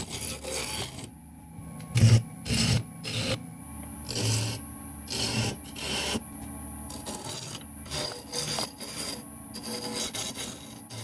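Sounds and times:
tool scraping wood on lathe: 0.0 - 1.1, 4.0 - 6.2, 6.9 - 11.0
lathe humming: 0.0 - 11.0.

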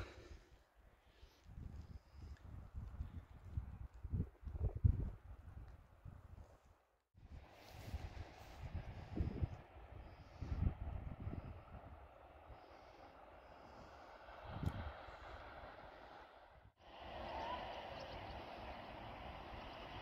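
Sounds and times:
wind buffeting microphone: 1.4 - 6.5, 7.2 - 20.0.

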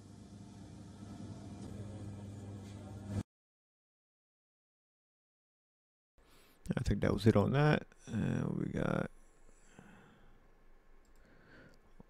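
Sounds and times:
faint computer mouse clicks: 11.0 - 11.8.

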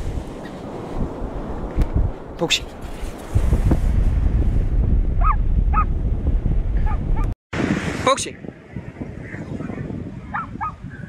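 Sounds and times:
wind buffeting microphone: 0.0 - 11.0
dog barking: 5.2 - 5.9, 10.3 - 10.8.

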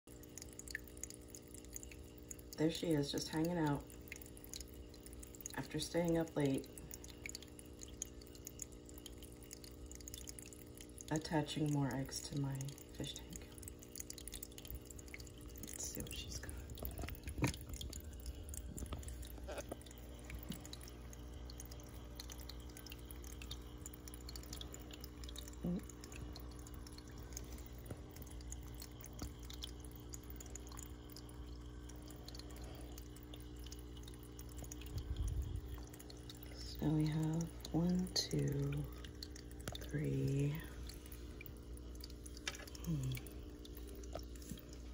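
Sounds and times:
filter hum: 0.1 - 44.9
water trickling from filter: 0.1 - 44.9.

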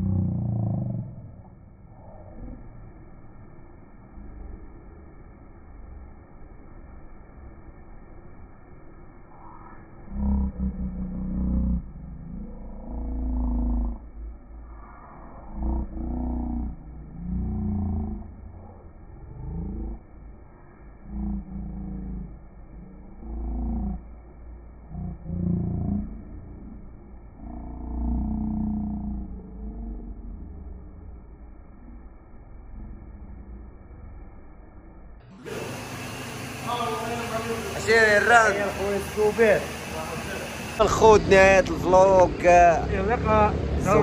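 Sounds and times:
muffled filtered voice bursts: 0.0 - 6.2, 9.2 - 33.8, 35.3 - 44.0.

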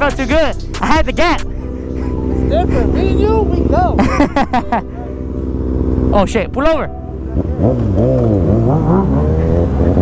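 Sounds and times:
motorcycle engine idling: 0.0 - 8.5
voice and laughter: 0.8 - 5.2.

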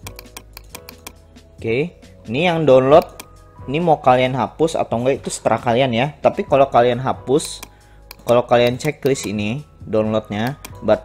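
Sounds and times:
computer mouse clicking: 0.0 - 1.2, 3.0 - 3.3, 7.4 - 9.4.

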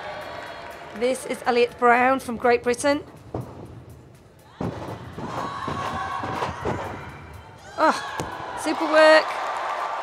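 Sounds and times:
arena crowd cheering: 0.0 - 1.4, 5.1 - 10.0.

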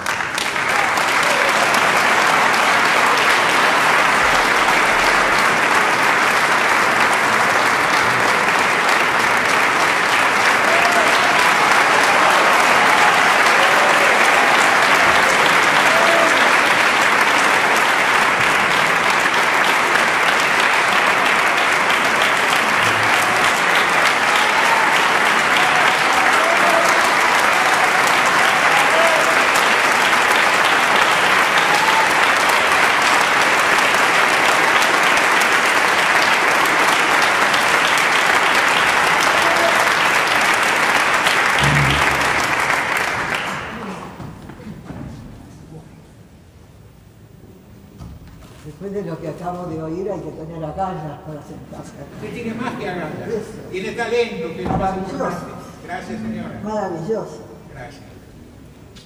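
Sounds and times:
audience applauding: 0.0 - 44.7.

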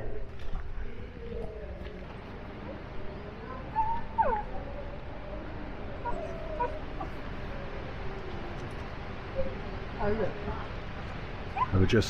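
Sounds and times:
animal squeaky calls: 11.5 - 11.8.

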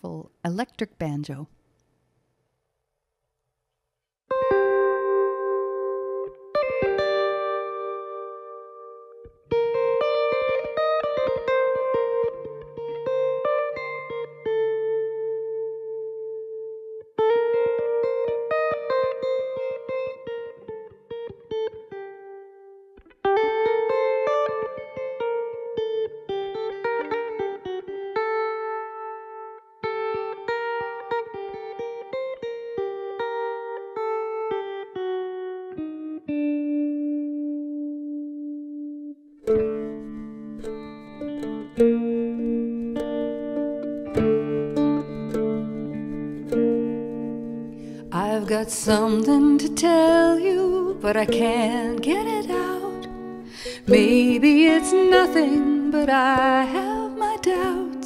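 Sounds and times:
electric banjo picking: 4.3 - 58.0
small plucked string instrument: 4.3 - 58.0.

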